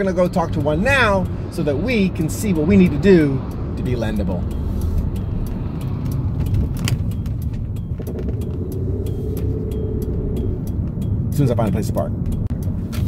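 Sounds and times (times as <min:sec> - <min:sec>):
car cabin road and engine rumble: 0:00.0 - 0:13.0.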